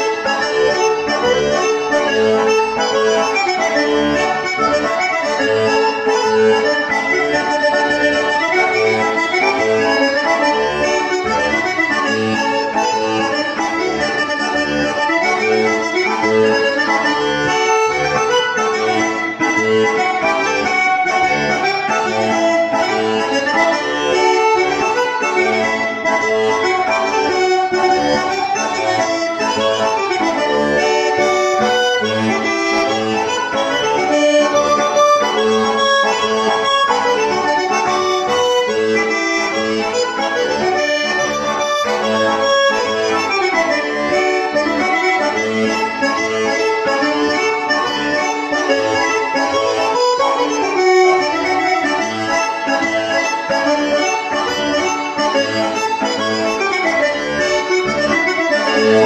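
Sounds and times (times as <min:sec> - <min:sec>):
button accordion polka: 0:00.0 - 0:59.0.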